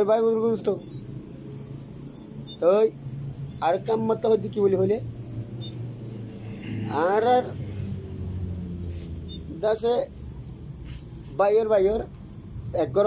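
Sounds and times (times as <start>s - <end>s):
man speaking: 0.0s - 0.8s, 2.6s - 3.0s, 3.6s - 5.1s, 6.7s - 7.7s, 9.5s - 10.2s, 11.3s - 12.1s, 12.8s - 13.0s
crickets chirping: 0.0s - 13.0s.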